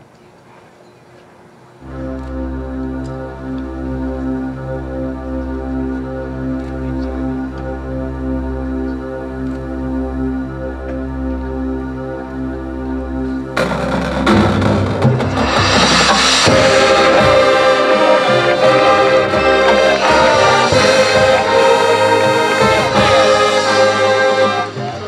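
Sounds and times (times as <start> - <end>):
marching band playing: 13.6 - 25.0.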